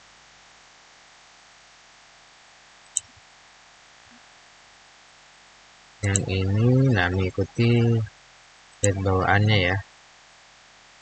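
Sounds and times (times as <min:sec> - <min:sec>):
faint hiss: 0:00.0 - 0:11.0
computer mouse click: 0:02.9 - 0:03.2, 0:08.8 - 0:09.0.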